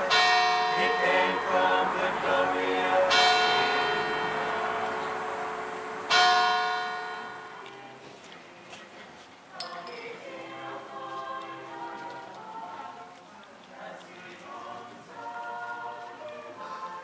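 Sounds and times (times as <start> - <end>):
faint singing: 0.0 - 6.1, 7.5 - 17.0
bell ringing: 0.0 - 7.9.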